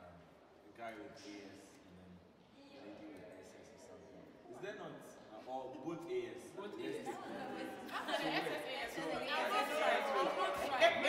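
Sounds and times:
group of people chattering: 1.2s - 11.0s.

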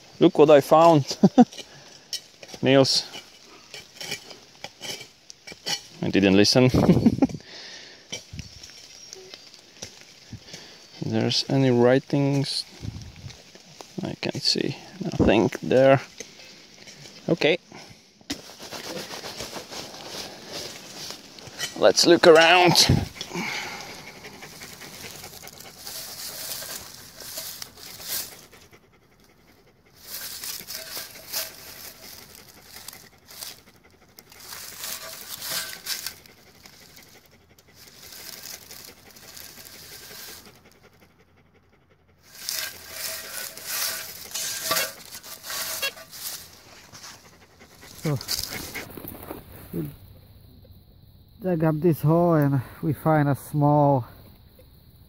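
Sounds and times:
rustling: 8.1s - 41.1s, 42.2s - 50.2s
panting breaths: 22.7s - 49.0s.

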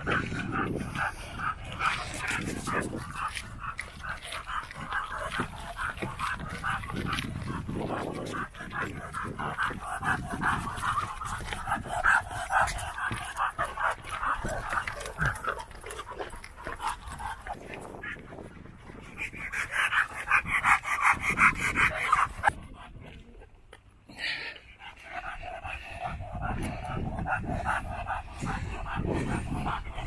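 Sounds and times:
dog panting rapidly: 0.0s - 22.9s, 24.8s - 30.0s.

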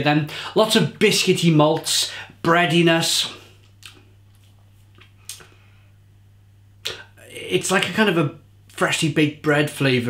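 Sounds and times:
steady low hum: 0.0s - 10.0s
man's lip smack: 3.6s - 5.5s, 6.8s - 7.1s.

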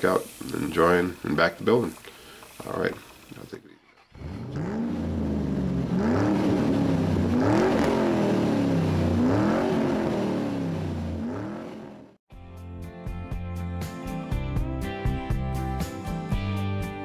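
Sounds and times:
car engine idling and revving: 3.9s - 12.2s
music: 12.3s - 17.0s.

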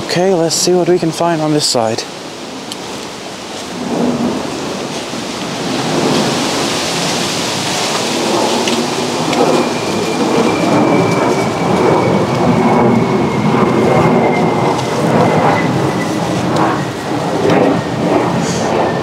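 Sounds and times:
high engine whine: 0.0s - 19.0s
jet aircraft rumble: 0.0s - 19.0s.

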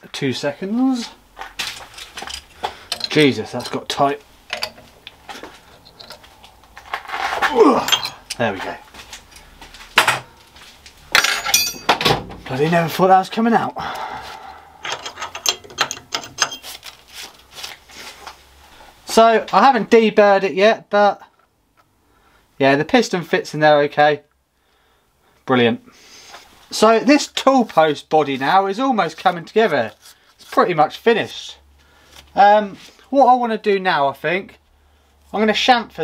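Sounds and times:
metallic clicks of steel tooling: 2.0s - 5.2s, 14.8s - 16.6s.

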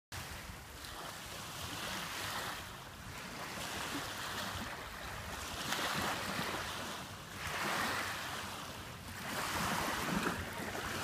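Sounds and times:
waves lapping on sandy shore: 0.1s - 11.0s
wind rumble on microphone: 0.2s - 11.0s.

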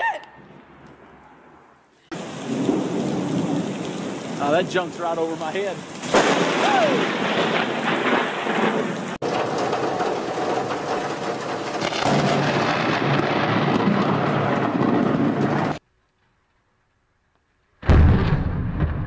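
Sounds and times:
heavy rain: 2.1s - 15.8s
thunder rumbling: 2.1s - 15.8s, 17.8s - 19.0s.

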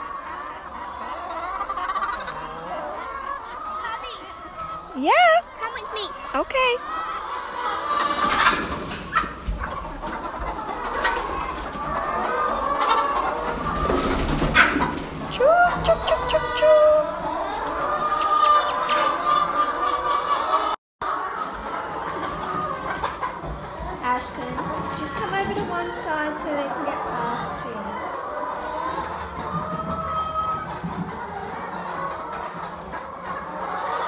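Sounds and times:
hens clucking and calling: 0.0s - 34.0s.

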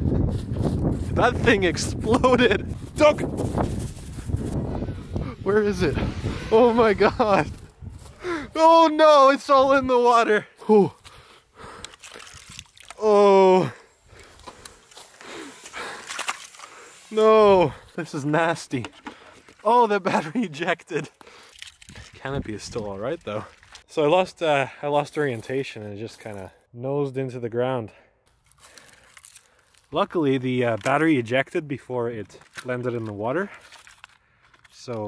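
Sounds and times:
breathy rush: 8.1s - 8.8s, 13.2s - 18.0s
crunching in dry pine needles: 11.0s - 13.4s, 14.0s - 18.1s, 19.3s - 23.8s, 28.3s - 31.2s, 32.3s - 34.9s
plastic parts rustling and clicking: 18.7s - 19.7s, 28.4s - 31.1s, 32.2s - 35.0s.

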